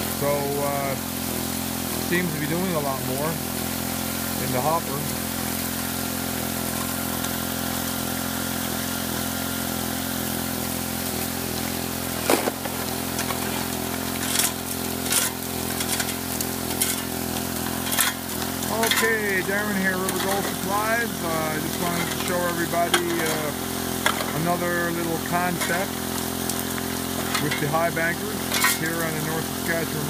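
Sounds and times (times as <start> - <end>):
water jets washing through hopper: 0.0 - 30.0
water pump engine running: 0.0 - 30.0
gravel clattering into metal hopper: 1.9 - 3.4, 11.8 - 30.0.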